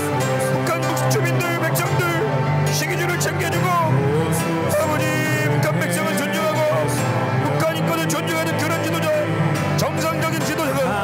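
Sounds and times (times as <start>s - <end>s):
sustained background music: 0.0s - 11.0s.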